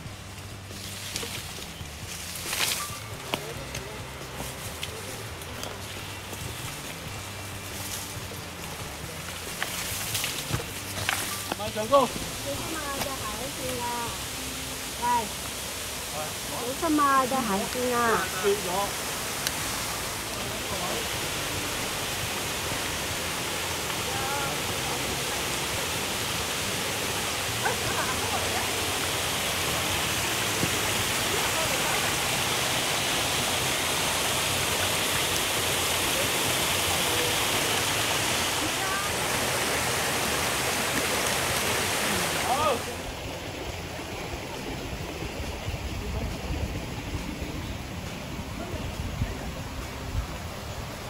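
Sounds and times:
low water rumble: 0:00.0 - 0:51.0
waterfall rushing over boulders: 0:00.0 - 0:51.0.

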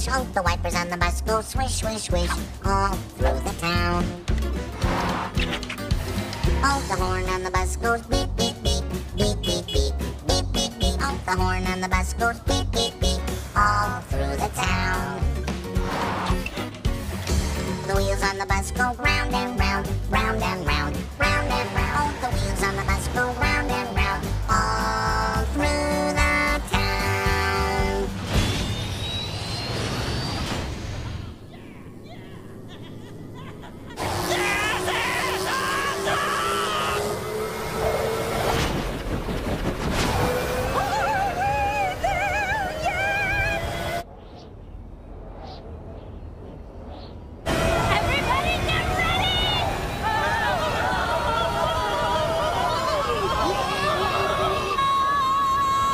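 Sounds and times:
children's song with band: 0:00.0 - 0:04.2, 0:06.6 - 0:15.4, 0:17.8 - 0:28.1
cartoon background score: 0:00.0 - 0:29.8, 0:31.0 - 0:38.2
voices calling out: 0:31.2 - 0:38.4, 0:47.5 - 0:55.9
cartoon sound effects: 0:34.0 - 0:37.6.

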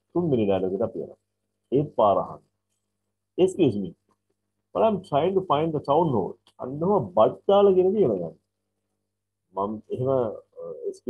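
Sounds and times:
person speaking: 0:00.1 - 0:01.1, 0:01.7 - 0:02.4, 0:03.4 - 0:03.9, 0:04.8 - 0:08.3, 0:09.6 - 0:11.0.

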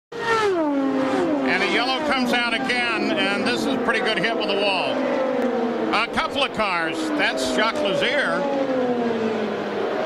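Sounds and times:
race car engine passing: 0:00.1 - 0:10.0
commentator speaking: 0:01.4 - 0:05.0, 0:05.8 - 0:08.5.

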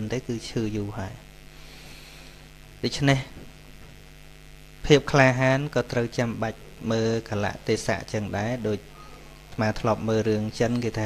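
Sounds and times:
man speaking: 0:00.0 - 0:01.3, 0:02.8 - 0:03.4, 0:04.8 - 0:11.0
electrical mains hum: 0:00.0 - 0:11.0.

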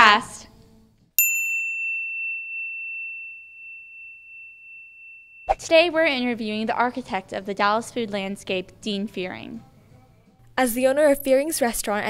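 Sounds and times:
high bell-like ding: 0:01.2 - 0:05.7.

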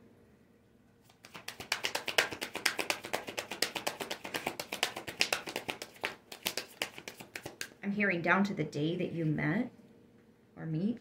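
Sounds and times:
cards being shuffled: 0:01.0 - 0:07.8.

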